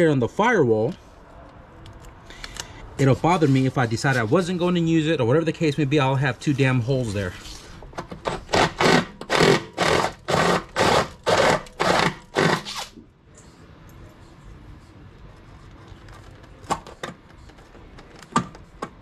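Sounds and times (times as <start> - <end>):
power drill cutting sheet metal: 8.5 - 12.9.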